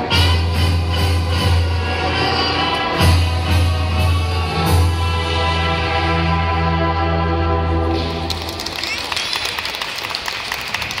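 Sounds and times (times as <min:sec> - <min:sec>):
audience applause: 0:08.2 - 0:11.0.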